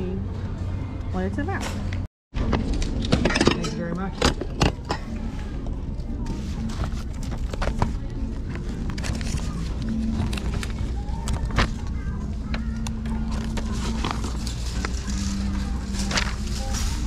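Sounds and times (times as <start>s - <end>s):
store music: 0.0s - 17.0s
paper folder rustling: 6.3s - 11.9s, 13.2s - 17.0s.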